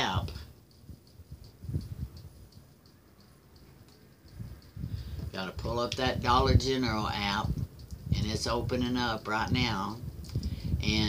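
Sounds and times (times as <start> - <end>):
faint regular ticking: 0.0 - 11.0.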